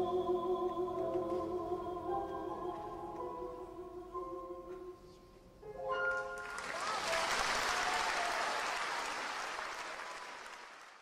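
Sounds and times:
audience applause: 0:06.4 - 0:11.0.

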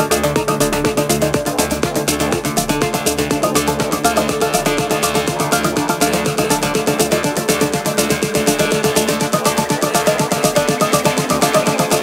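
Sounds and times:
melodic techno music: 0:00.0 - 0:12.0.

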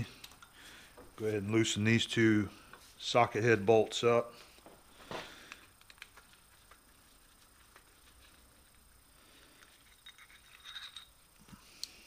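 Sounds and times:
faint clicks and handling noises: 0:00.2 - 0:01.1, 0:04.6 - 0:08.9, 0:09.5 - 0:12.0.

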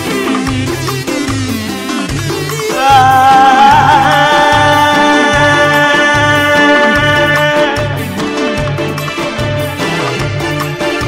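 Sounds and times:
dance music band: 0:00.0 - 0:11.0
electronic keyboard: 0:00.0 - 0:11.0
percussion: 0:00.0 - 0:11.0
repeating bass line: 0:00.0 - 0:11.0.

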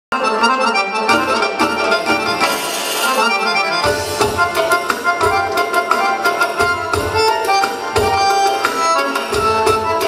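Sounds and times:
dance music with accordion melody: 0:00.1 - 0:10.0.

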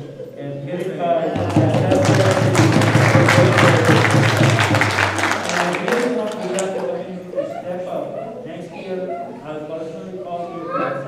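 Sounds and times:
audience clapping: 0:01.4 - 0:07.0.

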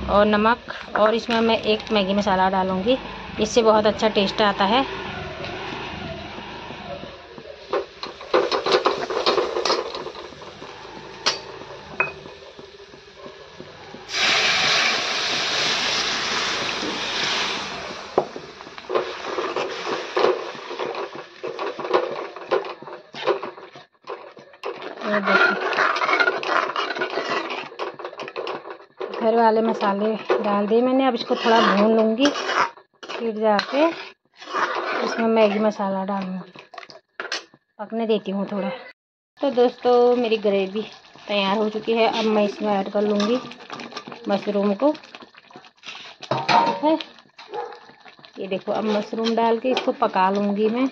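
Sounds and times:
metal spoon scraping a pan: 0:07.3 - 0:35.8, 0:41.9 - 0:44.8, 0:45.8 - 0:50.9
loud sizzling in hot pan: 0:07.8 - 0:22.5.

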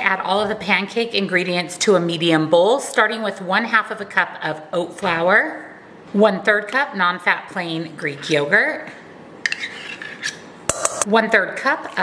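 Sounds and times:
spoon scraping measuring cup: 0:09.4 - 0:10.5.

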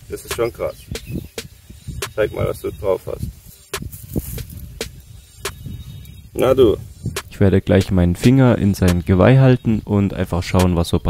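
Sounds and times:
wind on microphone: 0:00.0 - 0:09.9
microphone handling clicks and rustles: 0:03.2 - 0:06.2.

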